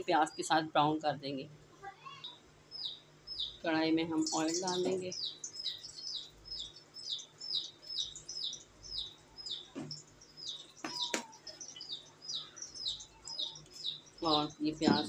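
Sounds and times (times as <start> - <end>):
small bird chirping: 2.0 - 15.0.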